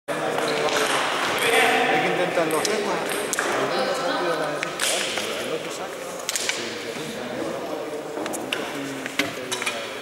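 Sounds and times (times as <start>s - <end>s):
table tennis balls bouncing: 2.4s - 3.7s.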